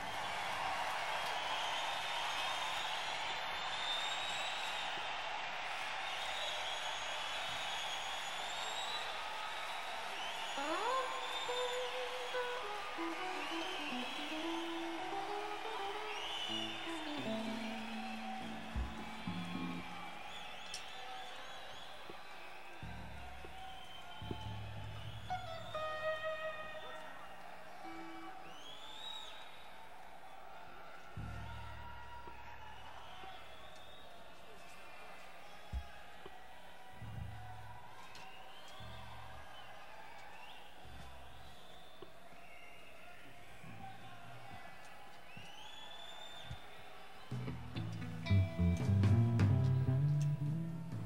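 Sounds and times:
faint hiss and stage noise: 0:00.0 - 0:35.4
crowd cheering and chatter: 0:00.0 - 0:51.0
person whistling: 0:10.4 - 0:20.8
guitar note rising in pitch: 0:10.6 - 0:20.1, 0:25.3 - 0:27.0, 0:47.5 - 0:51.0.

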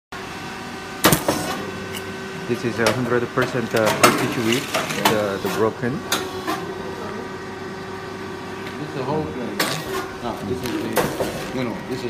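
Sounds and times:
machine humming: 0:00.2 - 0:12.0.

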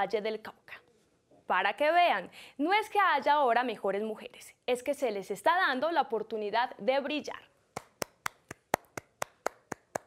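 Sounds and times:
person clapping hands: 0:07.8 - 0:10.0.

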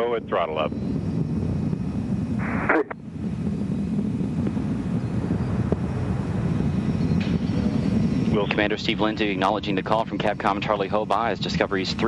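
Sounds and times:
deep rocket engine rumble: 0:00.0 - 0:12.0.

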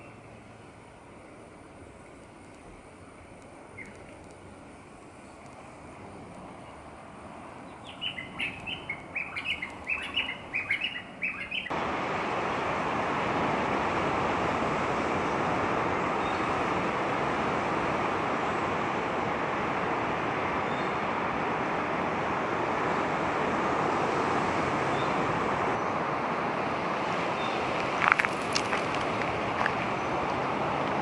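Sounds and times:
steady rushing noise: 0:00.0 - 0:31.0
small bird chirping: 0:03.7 - 0:04.5, 0:07.6 - 0:11.7.

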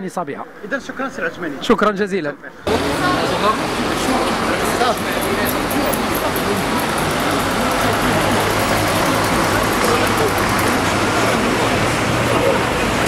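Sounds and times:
people talking: 0:00.0 - 0:13.0
street traffic: 0:00.0 - 0:13.0.

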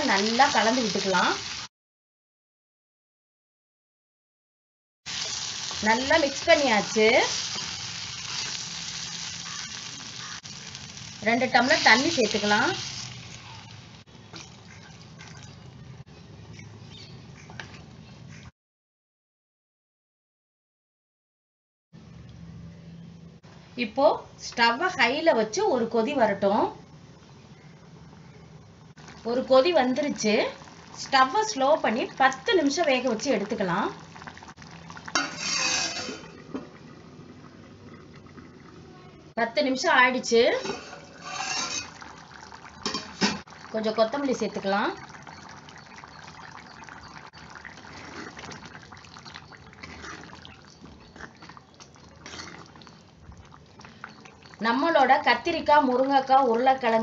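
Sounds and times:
water sizzling in a hot pot: 0:00.0 - 0:01.7, 0:05.1 - 0:15.7, 0:29.0 - 0:38.8, 0:39.8 - 0:57.0
metal lid scraping and clinking: 0:35.2 - 0:36.4, 0:40.5 - 0:42.1.

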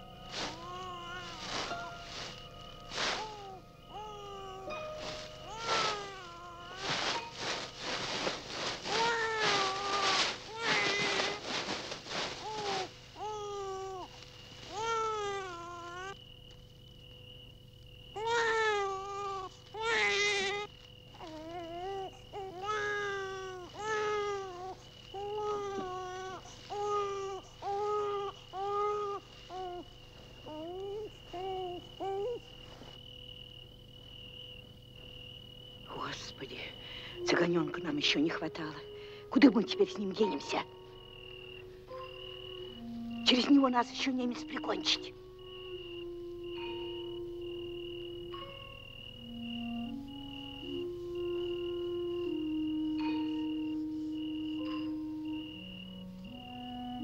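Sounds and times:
infant crying: 0:00.4 - 0:02.2, 0:03.2 - 0:11.8, 0:12.4 - 0:14.1, 0:14.7 - 0:16.2, 0:18.2 - 0:32.5
faint steady high tone: 0:35.9 - 0:57.0.

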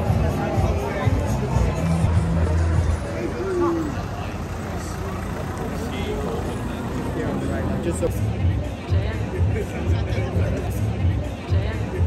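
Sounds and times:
crowd chattering: 0:00.0 - 0:12.0
road traffic: 0:00.0 - 0:12.0.

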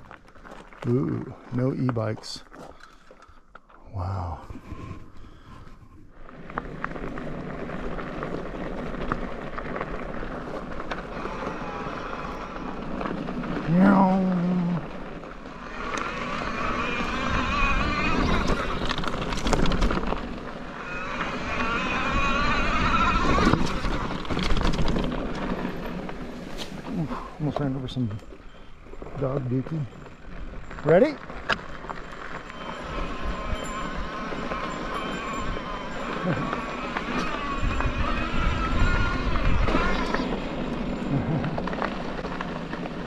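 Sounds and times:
bike tyres crunching on gravel: 0:00.0 - 0:43.0
high warbling brake squeals: 0:15.6 - 0:24.8, 0:31.8 - 0:41.4
wind on microphone: 0:32.5 - 0:41.7.

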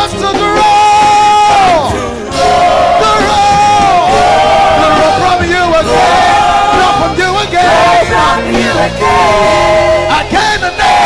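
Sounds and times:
crowd singing worship music: 0:00.0 - 0:11.0.

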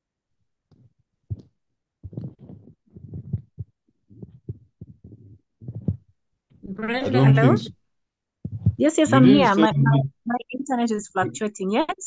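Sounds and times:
muffled choppy voice on video call: 0:04.2 - 0:06.0, 0:06.7 - 0:07.8, 0:08.5 - 0:12.0.

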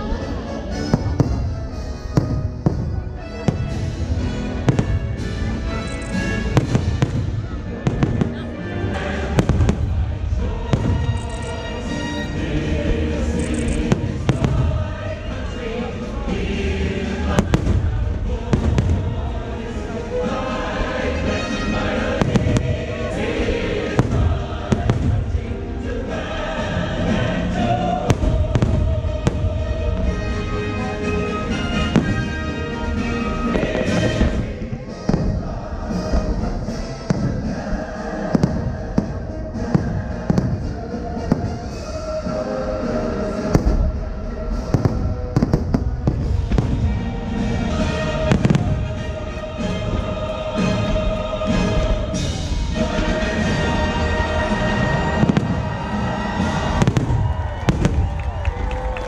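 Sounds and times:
music soundtrack: 0:00.0 - 0:59.0
fireworks bursting: 0:00.8 - 0:59.0
sharp firework bangs: 0:06.3 - 0:08.4.

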